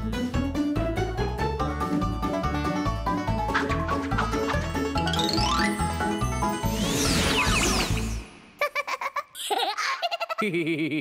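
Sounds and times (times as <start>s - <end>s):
upbeat children's music: 0.0s - 6.9s
high-pitched cartoon giggling: 8.6s - 11.0s.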